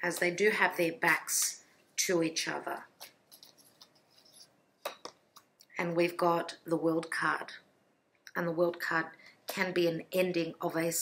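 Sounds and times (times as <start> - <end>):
cards rustling and clicking: 2.9 - 5.5.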